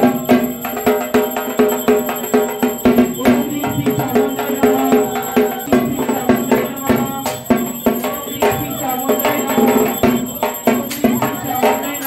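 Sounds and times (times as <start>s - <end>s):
drums beating quick rhythm: 0.0s - 12.0s.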